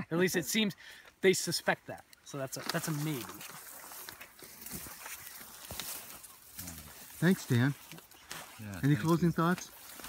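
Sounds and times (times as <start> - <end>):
dry reeds rustling: 1.4 - 10.0.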